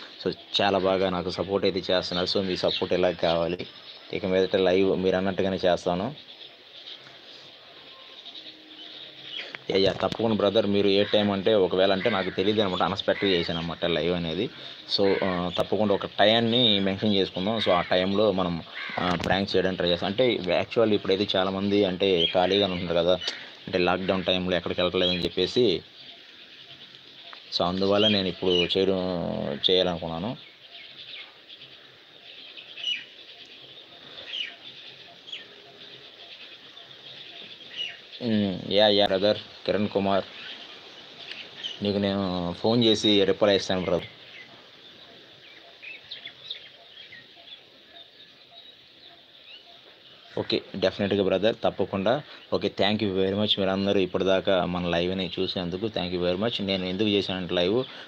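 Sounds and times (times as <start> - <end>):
small birds chirping: 0.0 - 58.0.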